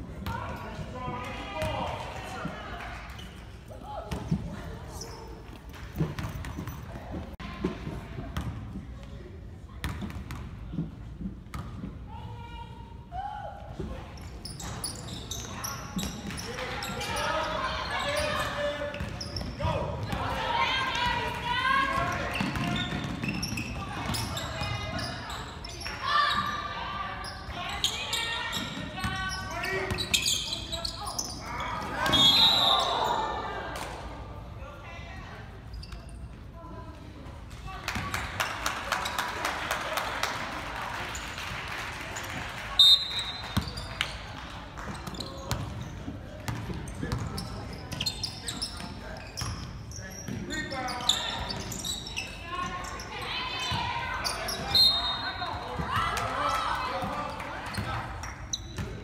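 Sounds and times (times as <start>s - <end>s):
voices shouting in a gym: 0.0s - 5.5s, 12.0s - 59.0s
basketball bouncing on court: 8.4s - 8.6s, 9.8s - 10.8s, 21.9s - 25.0s, 44.8s - 48.0s.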